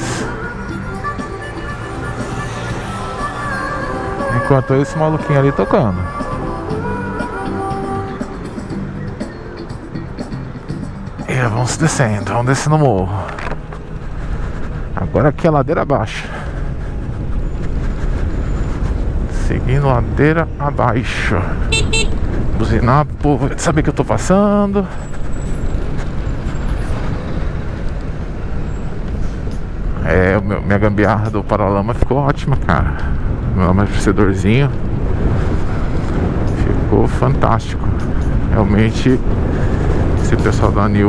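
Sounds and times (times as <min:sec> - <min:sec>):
wind rush: 0:00.0 - 0:07.2, 0:11.4 - 0:30.0, 0:32.6 - 0:41.0
road noise rumble: 0:00.0 - 0:41.0
traffic noise: 0:00.0 - 0:41.0.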